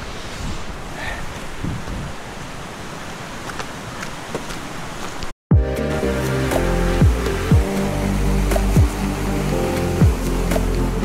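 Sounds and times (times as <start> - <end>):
rushing outdoor noise: 0.0 - 11.0
background music: 5.5 - 11.0.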